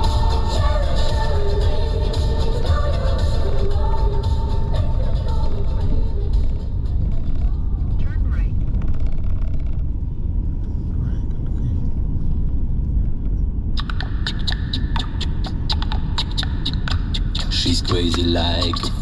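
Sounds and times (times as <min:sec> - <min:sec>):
background music: 0:00.0 - 0:08.3, 0:13.8 - 0:19.0
car interior rumble: 0:00.0 - 0:19.0
song with sharp even beat: 0:13.8 - 0:19.0.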